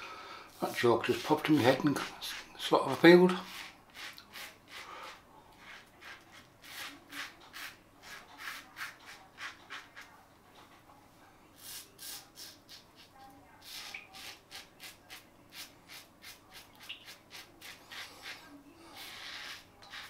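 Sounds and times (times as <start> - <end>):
razor scraping stubble: 0.7 - 10.1, 11.6 - 20.0.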